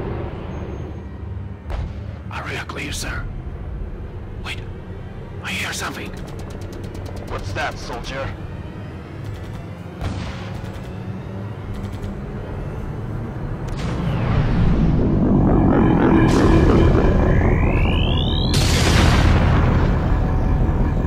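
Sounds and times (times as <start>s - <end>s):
dramatic music: 3.1s - 21.0s
rising whine: 12.6s - 21.0s
deep rumble: 13.4s - 21.0s.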